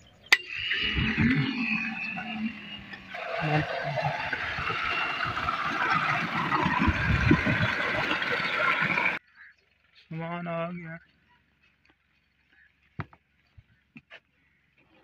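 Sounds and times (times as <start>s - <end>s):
water gushing into a concrete tank: 0.4s - 9.2s.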